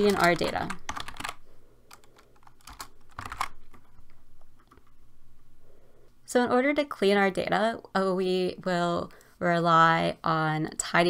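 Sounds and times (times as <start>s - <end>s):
computer keyboard typing: 0.0s - 5.0s.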